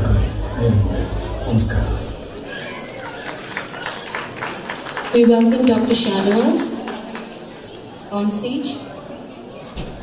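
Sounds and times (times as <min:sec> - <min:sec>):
audience clapping: 0:02.2 - 0:07.9.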